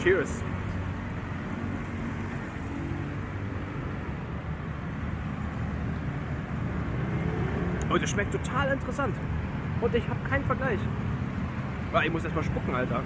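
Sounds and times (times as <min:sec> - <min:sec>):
low rumble of street traffic: 0:00.0 - 0:13.0.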